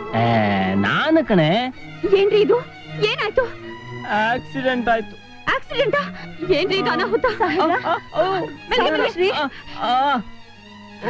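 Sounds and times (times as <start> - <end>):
film music: 0.0 - 11.0.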